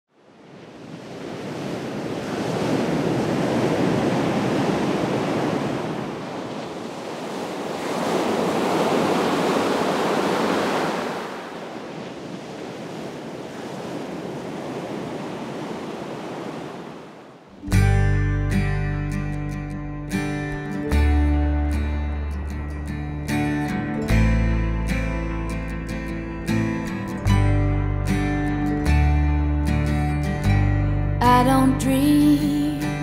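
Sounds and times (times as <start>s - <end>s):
surf washing over rocks: 0.2s - 17.6s
acoustic guitar strum: 17.6s - 33.0s.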